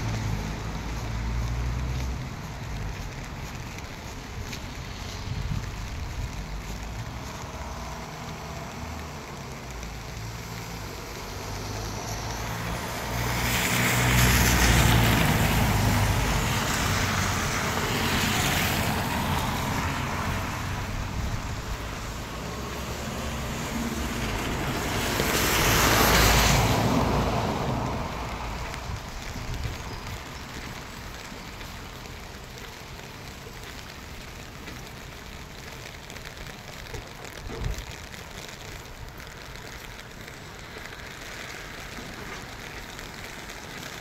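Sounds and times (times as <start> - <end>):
steady rain: 0.0 - 44.0
tyres hissing on wet road: 0.0 - 44.0.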